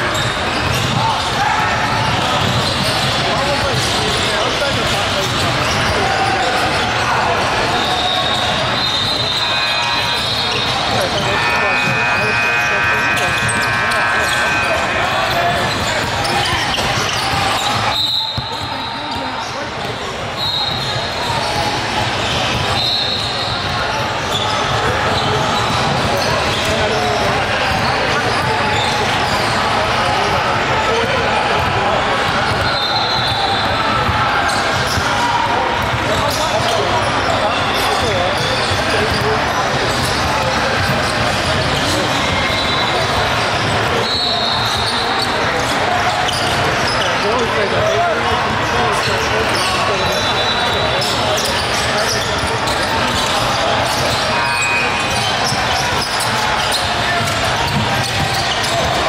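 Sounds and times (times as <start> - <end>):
indistinct voices: 0.0 - 59.0.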